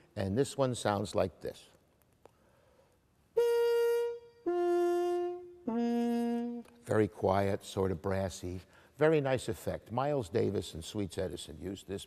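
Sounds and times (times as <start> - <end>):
muted trumpet long notes: 3.4 - 6.8.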